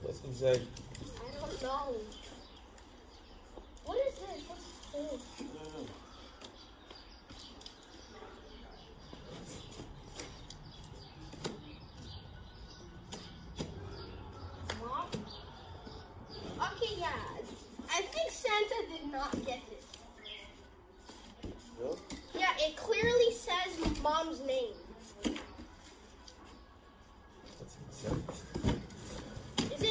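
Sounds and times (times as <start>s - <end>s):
voices: 0.0s - 29.9s.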